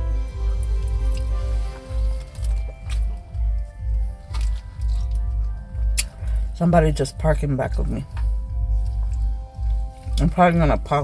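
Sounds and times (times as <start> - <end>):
car stereo music with heavy bass: 0.0 - 11.0.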